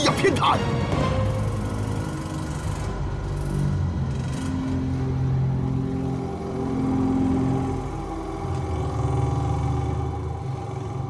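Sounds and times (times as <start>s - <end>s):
deep magical energy hum: 0.0s - 11.0s.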